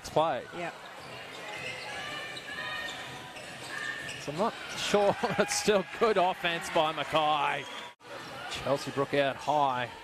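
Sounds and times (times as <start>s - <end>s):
indoor crowd hum: 0.0s - 10.0s
sneakers squeaking: 0.7s - 4.8s.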